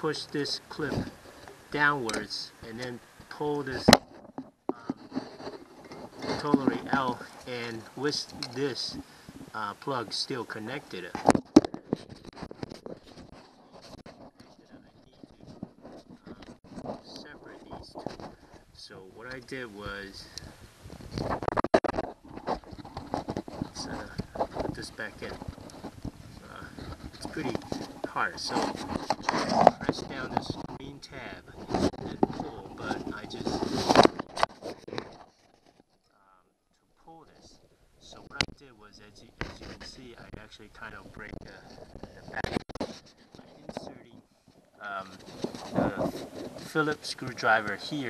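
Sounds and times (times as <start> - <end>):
plastic connector clicks and rubbing: 11.1 - 18.5, 20.3 - 30.8, 31.6 - 35.8, 41.0 - 43.9.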